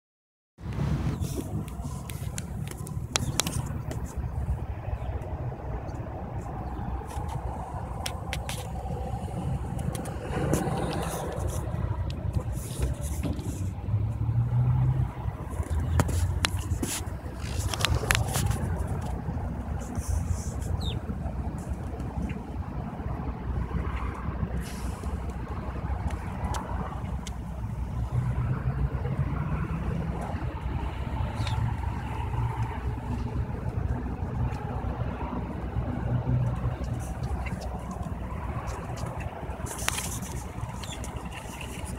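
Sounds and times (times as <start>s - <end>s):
traffic rumble: 0.6s - 41.9s.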